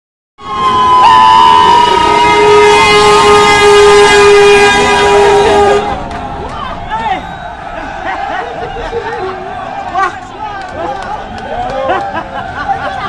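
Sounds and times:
bus horn blaring: 0:00.4 - 0:06.4.

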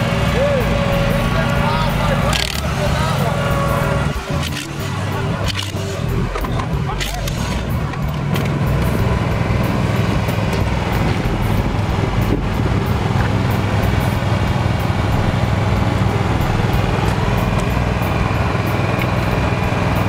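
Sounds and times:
vehicle engine idling: 0:00.0 - 0:20.0.

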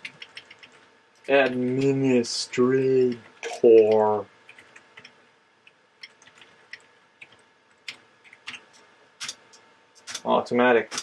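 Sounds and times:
computer keyboard clicks: 0:00.0 - 0:01.9, 0:03.1 - 0:05.2, 0:06.0 - 0:10.2.

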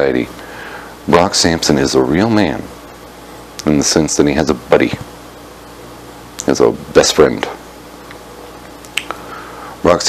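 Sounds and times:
low background hum: 0:00.0 - 0:10.0
sharp click: 0:08.0 - 0:09.2.

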